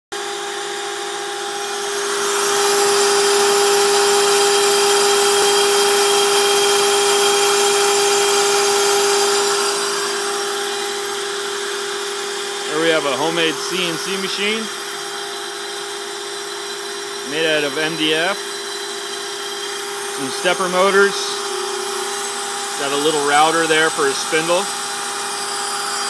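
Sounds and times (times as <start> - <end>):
router spindle whining: 0.2 - 26.0
dust extraction vacuum hiss: 1.7 - 26.0.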